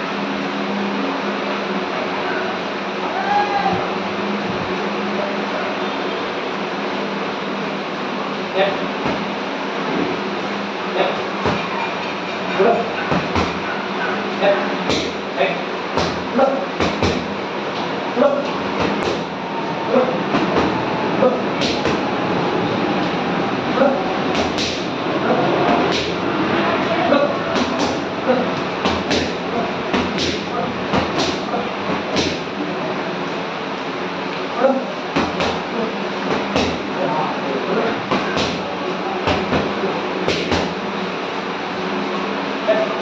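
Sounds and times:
loud steady noise: 0.0s - 43.0s
person shouting: 3.0s - 3.9s
gloves punching focus mitts: 13.1s - 13.7s, 14.9s - 15.2s, 16.0s - 17.4s, 18.7s - 19.4s, 20.3s - 20.8s, 21.6s - 22.1s, 24.3s - 24.9s, 25.7s - 26.2s, 27.5s - 32.6s, 35.2s - 36.9s, 38.1s - 38.7s, 39.3s - 40.8s
glove striking focus mitt: 21.6s - 22.1s, 25.9s - 26.2s.

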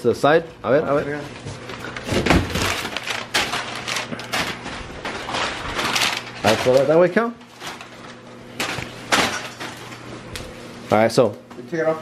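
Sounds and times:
cardboard and plastic being handled: 1.3s - 9.9s.

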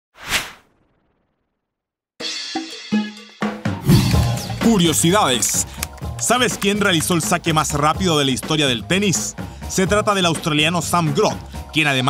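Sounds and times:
whoosh sound effect: 0.2s - 1.2s.

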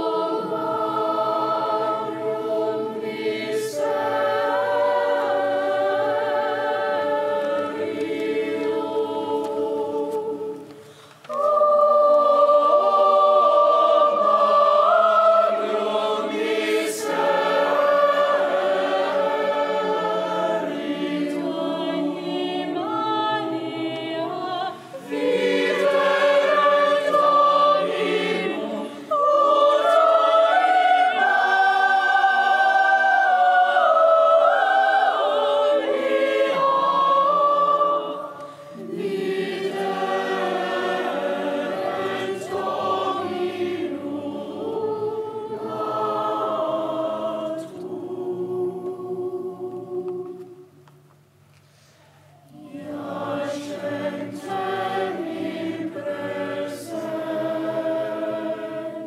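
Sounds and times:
children's choir singing a carol: 0.0s - 50.9s, 52.2s - 59.0s.

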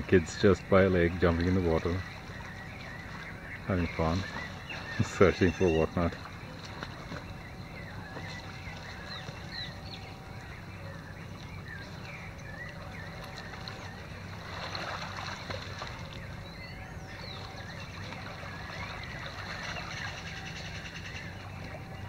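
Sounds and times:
steady low hum: 0.0s - 22.0s
children splashing in water: 12.9s - 16.2s.

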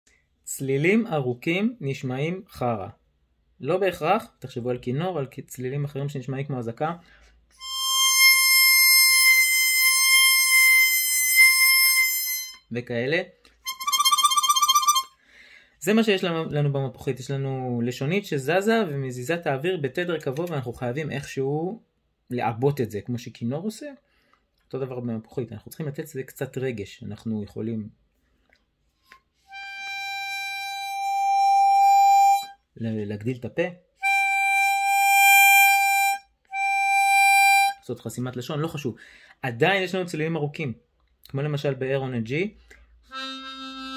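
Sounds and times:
harmonica long held note: 7.6s - 12.6s, 13.6s - 15.1s, 29.5s - 32.6s, 34.0s - 37.8s, 43.1s - 43.9s.

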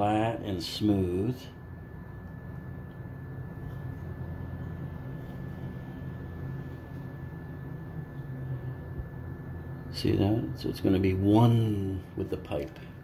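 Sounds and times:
faint high whine: 0.0s - 13.0s
low machine hum: 0.0s - 13.0s.

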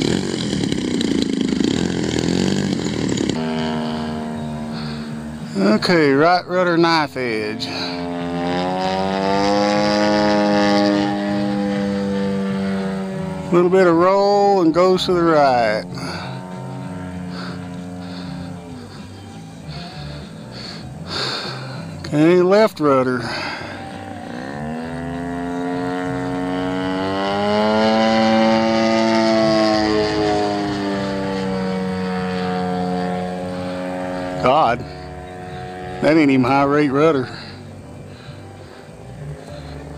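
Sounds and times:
model plane engine droning: 0.0s - 39.9s.

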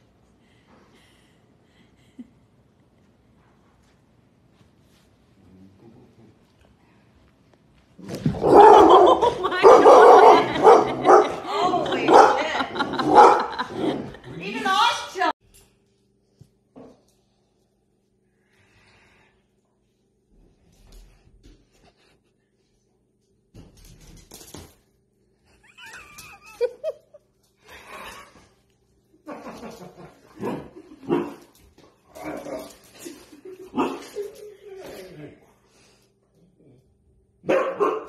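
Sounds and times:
dog barking loudly: 8.4s - 11.4s, 12.1s - 13.6s, 37.4s - 38.0s.

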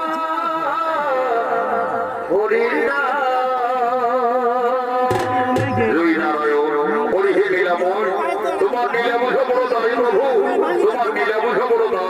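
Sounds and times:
crowd chatter: 4.8s - 12.0s.

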